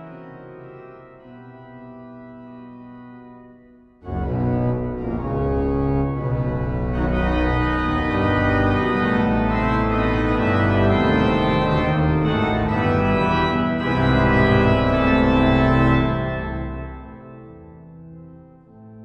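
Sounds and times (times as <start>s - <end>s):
pipe organ playing loud chords: 0.0s - 19.0s.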